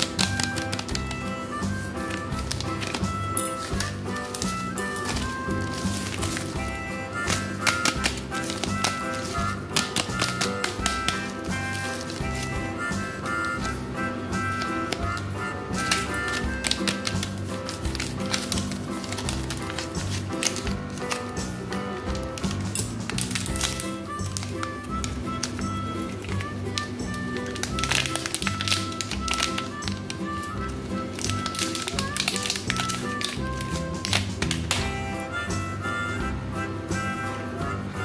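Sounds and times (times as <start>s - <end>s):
plastic wrappers crinkling: 0.0s - 35.0s
background music: 0.0s - 38.0s.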